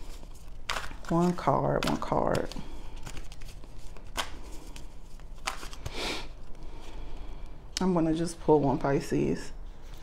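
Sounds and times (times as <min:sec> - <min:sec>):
cards being shuffled: 0:00.0 - 0:06.9.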